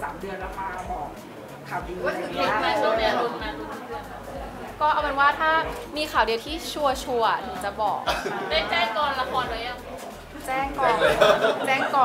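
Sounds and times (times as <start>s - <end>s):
faint background chatter: 0.0s - 12.0s
woman speaking: 4.7s - 9.8s, 10.4s - 12.0s.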